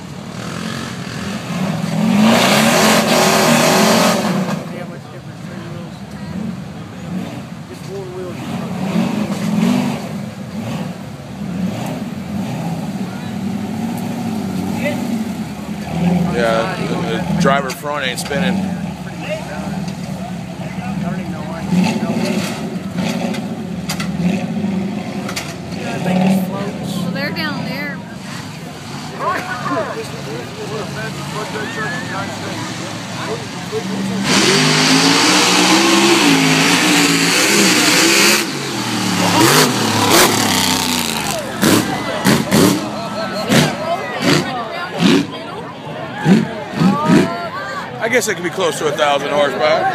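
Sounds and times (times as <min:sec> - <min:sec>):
buggy engine revving under load: 0:00.0 - 0:47.9
spectators talking: 0:00.0 - 0:49.9.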